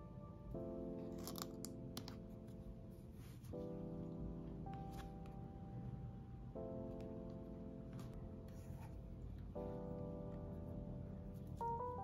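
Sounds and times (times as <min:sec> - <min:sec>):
soft background music: 0:00.0 - 0:12.0
blister pack crinkling and clicking: 0:01.1 - 0:02.2.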